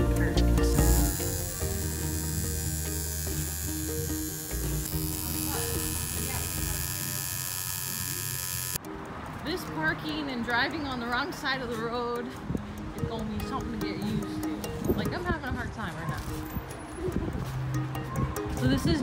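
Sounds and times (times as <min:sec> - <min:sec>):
music playing: 0:00.0 - 0:19.0
tattoo machine buzzing: 0:00.6 - 0:08.8.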